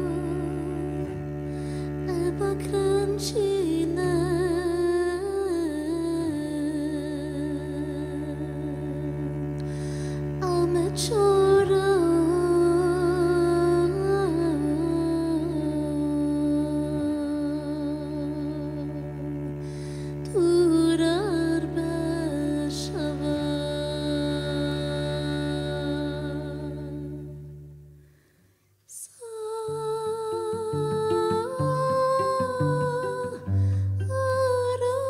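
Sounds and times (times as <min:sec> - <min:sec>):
woman singing long note: 0:00.0 - 0:27.4, 0:29.0 - 0:35.0
plucked double bass: 0:00.0 - 0:28.0, 0:30.7 - 0:35.0.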